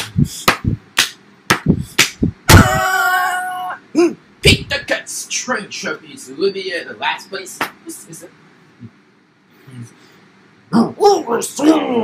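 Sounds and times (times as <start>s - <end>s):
sharp slaps or knocks: 0.0s - 2.8s, 7.6s - 7.8s
person yelling loudly: 2.5s - 3.8s.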